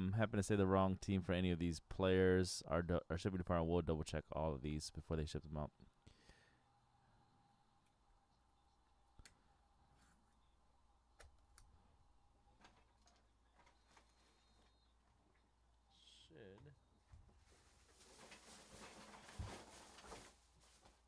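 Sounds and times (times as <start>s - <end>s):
faint room hum: 0.0s - 21.0s.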